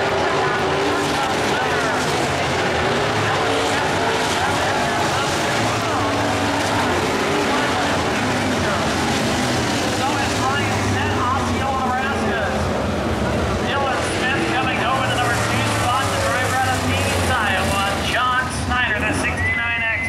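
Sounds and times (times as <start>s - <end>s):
people talking: 0.0s - 12.7s, 13.3s - 20.0s
race car engines running: 0.0s - 20.0s.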